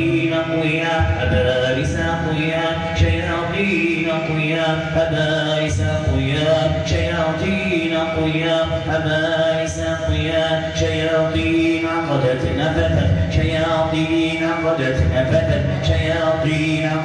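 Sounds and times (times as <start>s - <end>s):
man chanting melodic recitation: 0.0s - 17.0s.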